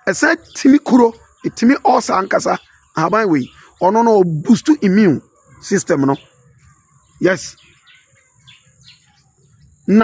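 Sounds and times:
man speaking: 0:00.0 - 0:06.3, 0:07.2 - 0:07.6
bird chirps: 0:00.0 - 0:10.0.

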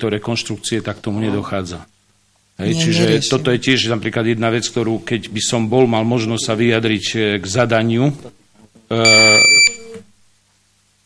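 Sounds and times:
high-pitched electronic beep: 0:09.1 - 0:09.9.

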